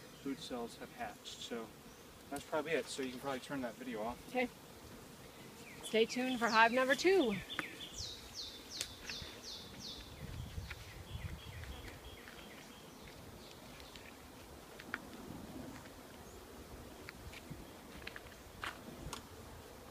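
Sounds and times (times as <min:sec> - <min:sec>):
songbird singing: 0:00.0 - 0:02.2, 0:05.1 - 0:14.3.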